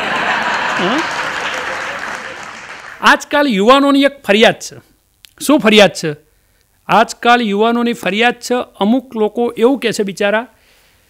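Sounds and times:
audience laughing: 0.0s - 2.6s
audience applauding: 0.0s - 3.0s.

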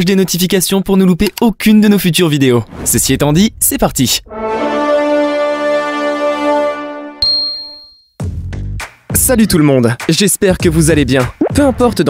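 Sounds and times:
intro music: 4.2s - 7.4s
bright ding: 7.2s - 8.1s.

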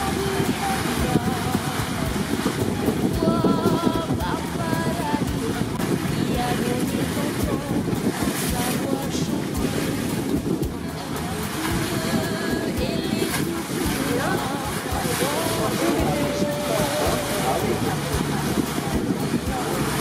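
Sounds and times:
faint voices talking: 0.0s - 20.0s
water washing around hull: 0.0s - 20.0s
wind buffeting microphone: 0.0s - 20.0s.

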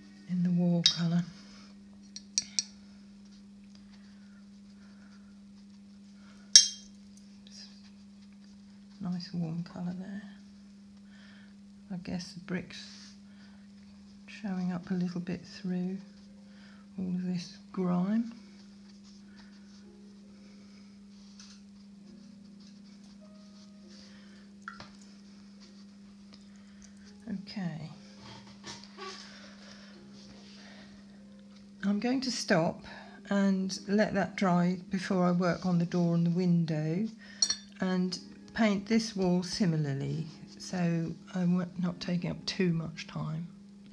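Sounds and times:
steady low hum: 0.0s - 43.9s
paintbrush brushing on paper: 18.4s - 20.4s, 21.1s - 24.2s, 25.1s - 26.3s.

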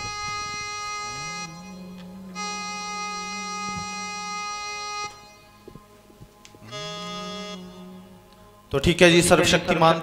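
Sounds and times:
organ-like keyboard chords: 0.0s - 10.0s.

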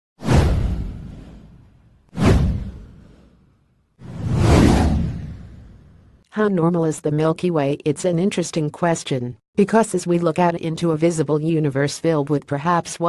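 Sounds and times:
whoosh sound effects: 4.0s - 6.0s.

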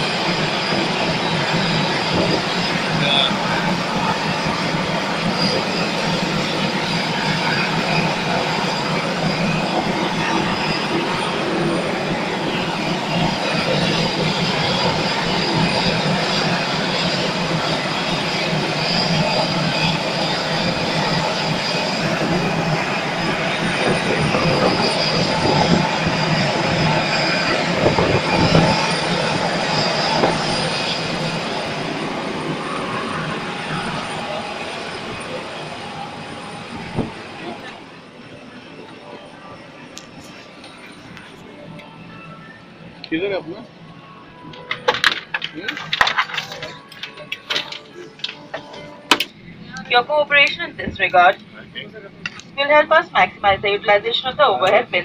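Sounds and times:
wind buffeting microphone: 0.0s - 37.7s
jet engine roar with high whine: 0.0s - 55.0s.

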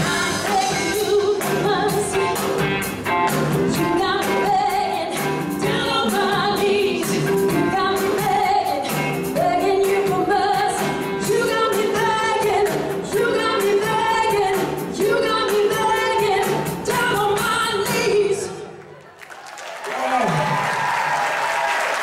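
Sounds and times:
lead vocal singing: 0.0s - 2.8s, 3.4s - 18.7s
steady drum beat: 0.0s - 18.0s
live band playing: 0.0s - 18.5s.

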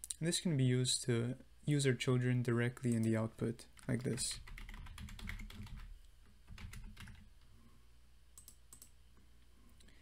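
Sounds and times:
computer keyboard keystrokes: 3.8s - 5.9s, 6.5s - 7.3s, 8.4s - 9.0s.

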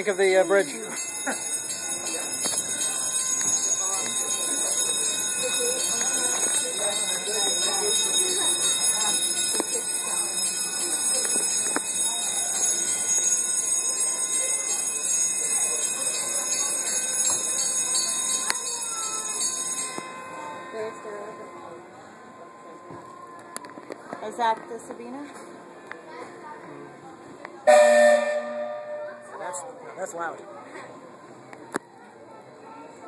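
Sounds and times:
warning bell ringing: 0.0s - 23.1s, 27.7s - 29.6s
onlookers talking: 0.0s - 33.0s.

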